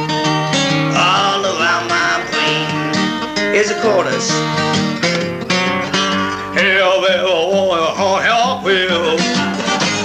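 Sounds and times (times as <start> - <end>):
blues acoustic guitar: 0.0 - 10.0.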